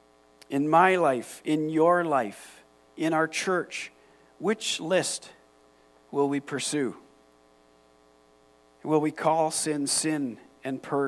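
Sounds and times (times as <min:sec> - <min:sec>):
faint electrical mains hum: 0:00.0 - 0:11.0
man speaking: 0:00.5 - 0:05.4, 0:06.1 - 0:07.1, 0:08.8 - 0:11.0.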